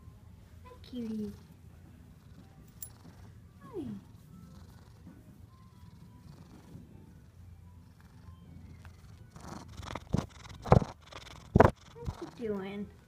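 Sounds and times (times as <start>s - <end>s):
cat purring: 0.7s - 13.0s
microphone rubbing on fur: 8.0s - 12.5s.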